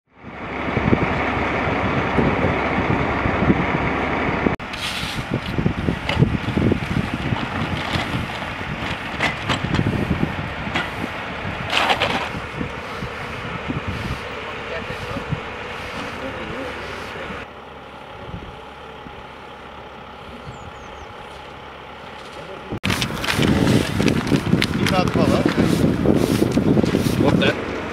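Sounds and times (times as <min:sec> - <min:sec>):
large vehicle engines running: 0:00.1 - 0:27.9
indistinct voices: 0:12.2 - 0:20.8.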